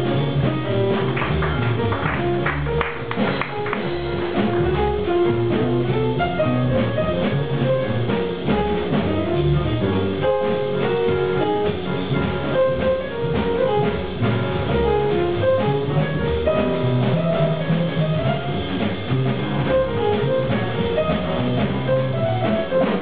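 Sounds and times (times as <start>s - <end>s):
acoustic piano playing: 0.0s - 23.0s
drum kit keeping time: 0.0s - 23.0s
plucked double bass: 0.0s - 23.0s.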